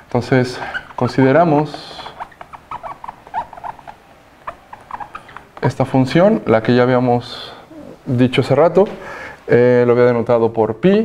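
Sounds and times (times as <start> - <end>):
marker squeaking on whiteboard: 0.0 - 8.1.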